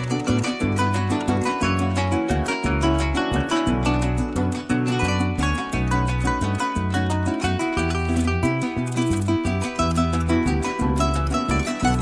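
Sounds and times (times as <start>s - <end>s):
electric bass: 0.0s - 12.0s
harp plucked runs: 0.0s - 12.0s
strummed cuatro: 0.0s - 12.0s.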